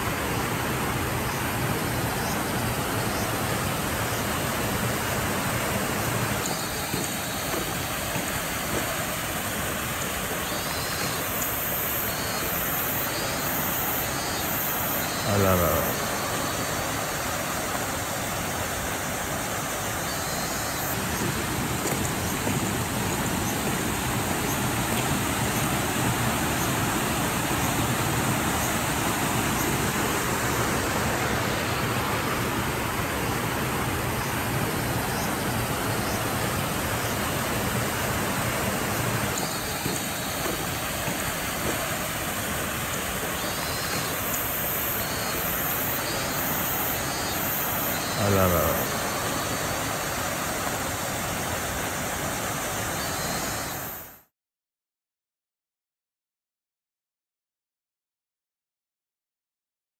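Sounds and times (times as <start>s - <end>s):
floodwater rushing: 0.0s - 54.0s.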